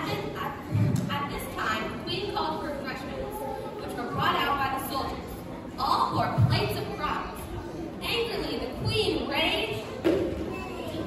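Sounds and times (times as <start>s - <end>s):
several voices talking: 0.0s - 11.0s.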